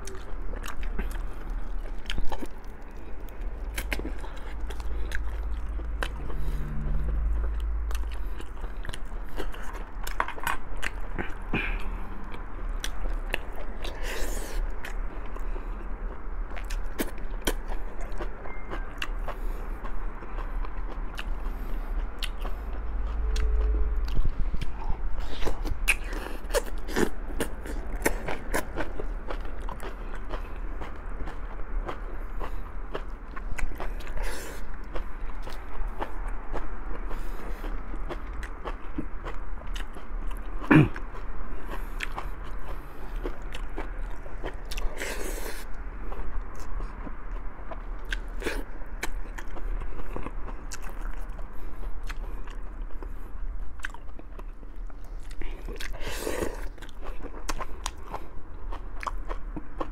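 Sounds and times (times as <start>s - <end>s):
chewing and biting meat: 0.0s - 59.9s.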